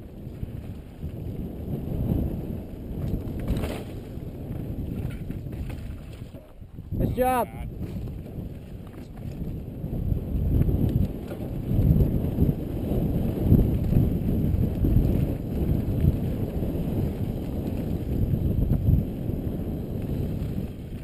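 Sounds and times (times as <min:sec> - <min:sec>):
bike tyres rumbling on dirt: 0:00.0 - 0:21.0
wind buffeting a camera: 0:00.0 - 0:21.0.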